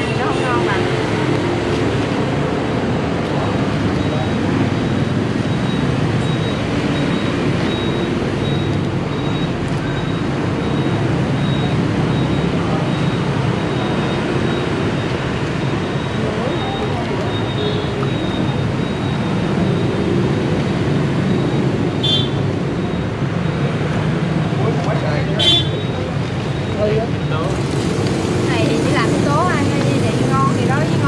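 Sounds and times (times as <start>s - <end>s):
dense street traffic: 0.0s - 31.0s.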